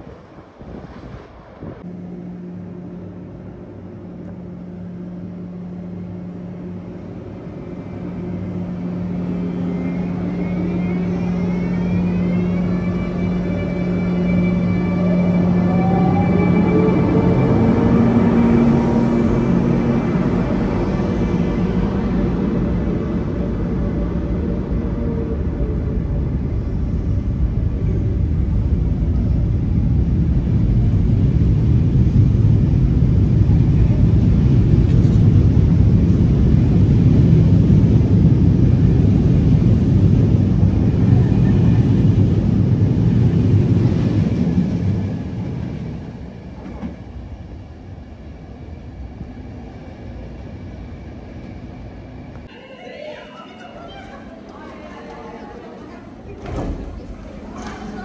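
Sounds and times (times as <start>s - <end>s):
train wheels rumbling on rails: 3.0s - 52.5s, 53.4s - 58.0s.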